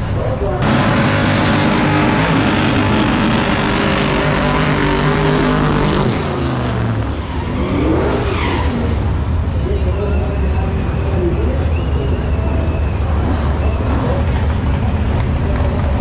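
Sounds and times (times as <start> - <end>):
race car engine revving: 0.6 - 9.6, 10.4 - 16.0.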